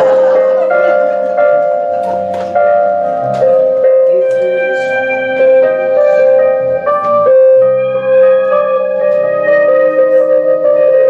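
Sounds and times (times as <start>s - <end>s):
electric keyboard chords: 0.0s - 11.0s
live band music: 1.9s - 10.3s.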